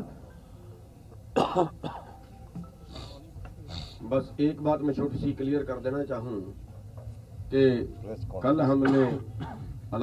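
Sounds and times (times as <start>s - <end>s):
low background murmur: 0.0s - 10.0s
person coughing: 1.4s - 2.1s, 8.8s - 9.7s.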